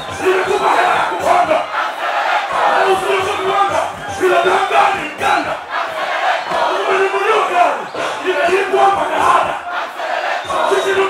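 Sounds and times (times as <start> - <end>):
crowd shouting and singing: 0.0 - 11.0.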